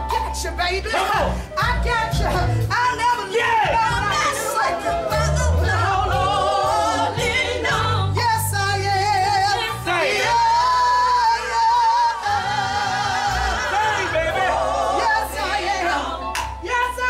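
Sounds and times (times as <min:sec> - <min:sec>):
band accompaniment with bass: 0:00.0 - 0:17.0
gospel singing: 0:00.0 - 0:17.0.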